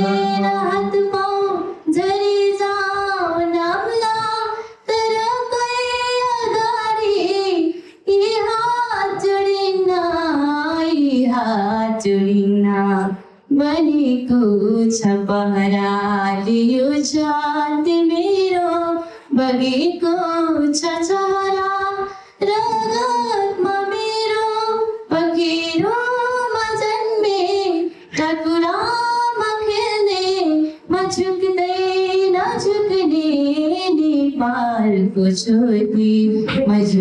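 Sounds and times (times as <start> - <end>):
woman singing solo: 0.0 - 2.5, 20.8 - 29.1.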